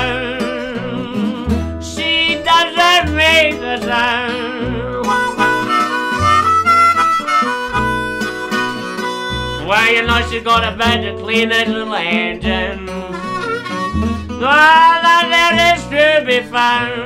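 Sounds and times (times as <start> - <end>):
acoustic guitars: 0.0 - 17.0
upright double bass: 0.0 - 17.0
harmonica solo: 5.0 - 10.3, 12.9 - 15.2.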